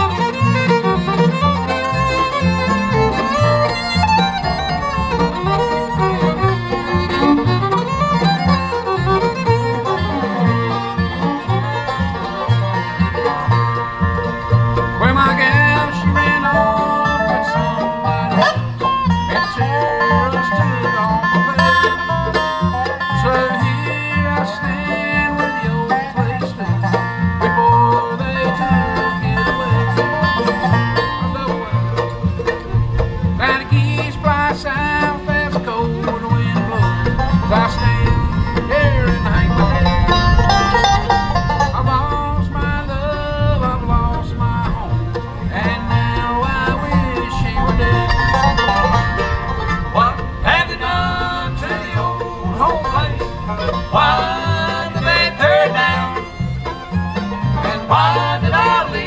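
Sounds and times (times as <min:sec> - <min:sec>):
bluegrass band playing: 0:00.0 - 0:59.0
plucked upright bass: 0:00.0 - 0:59.0.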